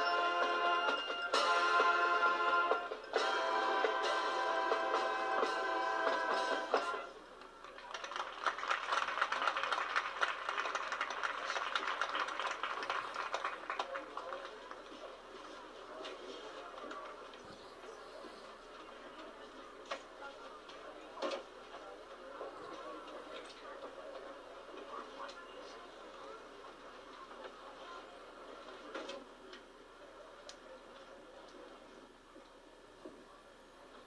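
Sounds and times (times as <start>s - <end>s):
faint crowd chatter: 0.0s - 34.0s
crowd clapping and cheering: 6.2s - 15.1s.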